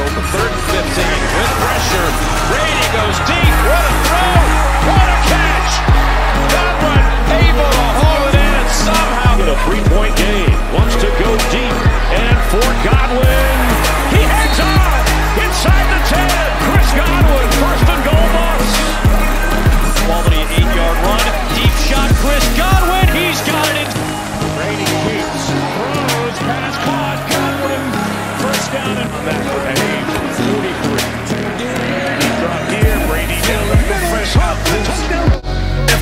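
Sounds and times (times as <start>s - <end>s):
deep bass line: 0.0s - 36.0s
hip-hop backing track: 0.0s - 36.0s.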